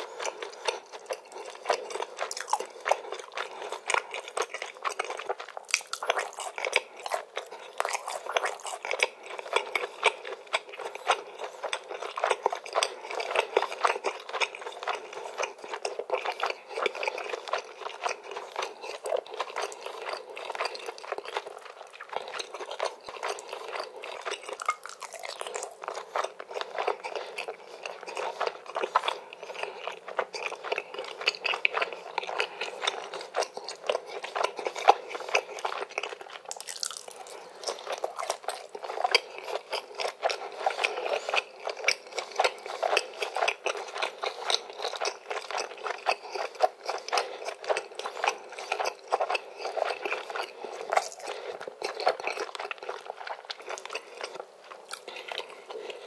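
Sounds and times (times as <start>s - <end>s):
close-miked chewing: 0.0s - 56.0s.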